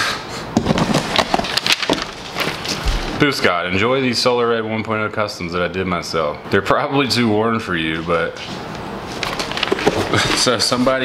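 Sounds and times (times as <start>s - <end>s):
cardboard box flaps crackling: 0.6s - 3.2s
paper rustling: 0.6s - 3.2s, 8.0s - 11.0s.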